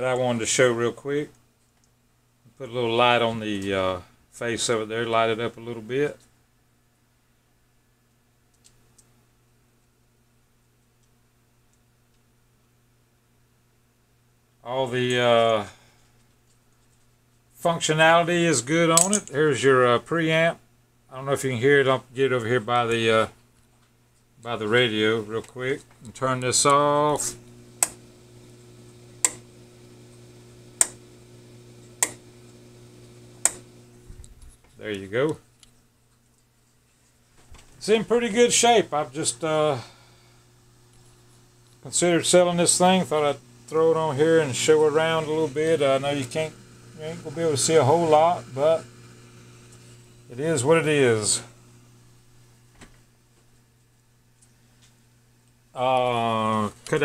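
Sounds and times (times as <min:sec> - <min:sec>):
steady low hum: 0:09.0 - 0:57.0
sharp radio control clicks: 0:27.8 - 0:28.0, 0:29.2 - 0:29.5, 0:30.8 - 0:31.0, 0:32.0 - 0:32.2, 0:33.4 - 0:33.8.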